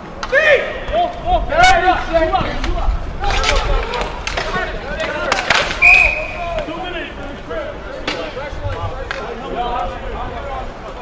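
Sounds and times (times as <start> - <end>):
players shouting: 0.1 - 11.0
hockey sticks and puck clacking: 2.0 - 10.0
referee's whistle: 5.8 - 6.5.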